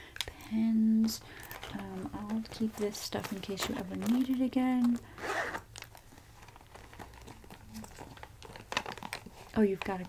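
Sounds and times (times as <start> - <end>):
zipper on a pouch: 5.0 - 5.7.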